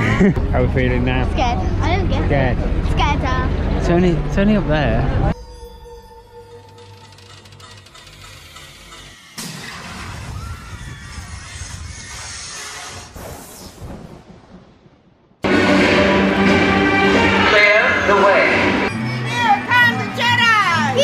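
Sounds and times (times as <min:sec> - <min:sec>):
loud music: 0:15.4 - 0:21.0.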